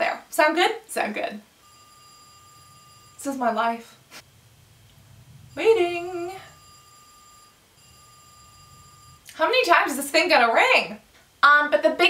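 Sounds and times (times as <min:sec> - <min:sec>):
phone ringing: 0:01.6 - 0:03.6, 0:05.4 - 0:09.2.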